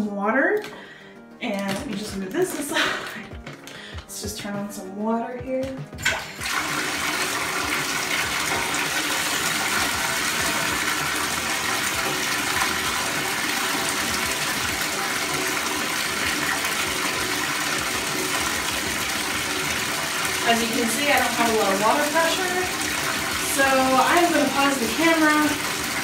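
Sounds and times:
water pouring into bathtub: 6.0 - 26.0.

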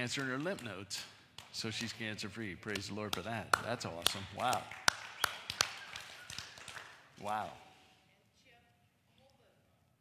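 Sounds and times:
hand clapping: 0.0 - 7.6.

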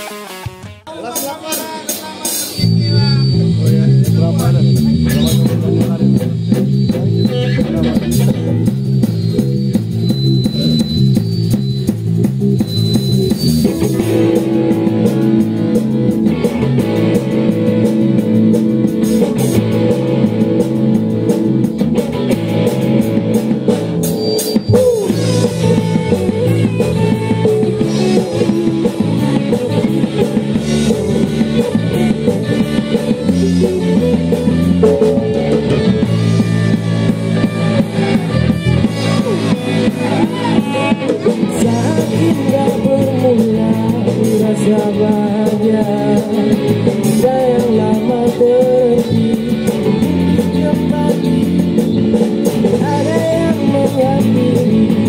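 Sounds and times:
live rock band playing: 0.0 - 55.0
repeating guitar riff: 0.0 - 55.0.

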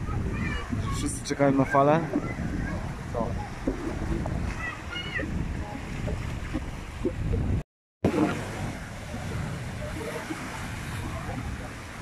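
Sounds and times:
surf washing between boulders: 0.0 - 12.0
waves crashing on rocks: 8.1 - 12.0.

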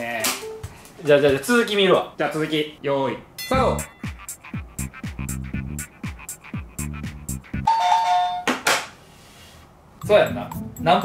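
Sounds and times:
two-note ding-dong chime: 3.4 - 4.1
upbeat electronic music: 3.5 - 7.7, 10.0 - 11.0.

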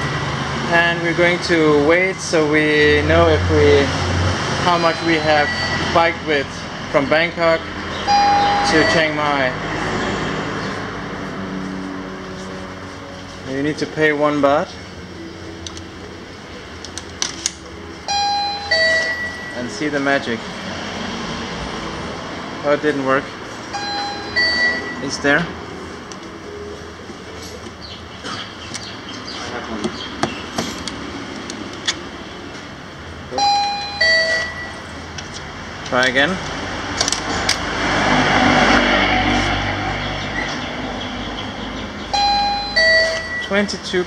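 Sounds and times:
shop background noise: 0.0 - 44.0
two-note electronic chime: 4.6 - 6.3, 8.0 - 9.4, 18.1 - 19.7, 23.7 - 25.0, 33.4 - 34.8, 42.1 - 43.5.

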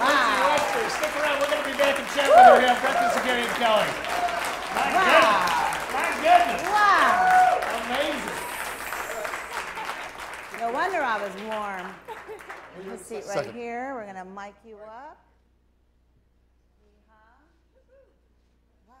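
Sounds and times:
audience applauding: 0.0 - 13.6.

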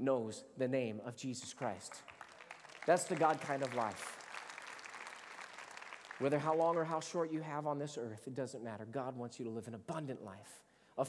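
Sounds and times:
congregation applauding: 1.4 - 7.4.

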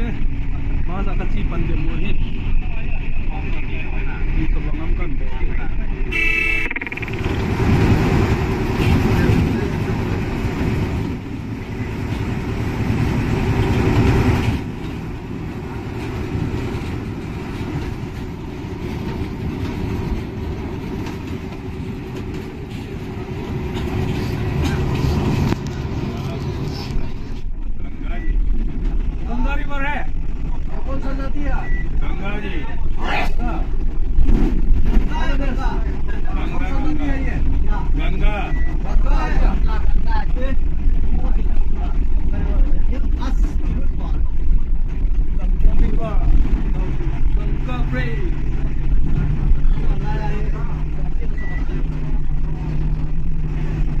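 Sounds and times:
bus engine and road rumble: 0.0 - 54.0
passengers chattering: 0.0 - 54.0.

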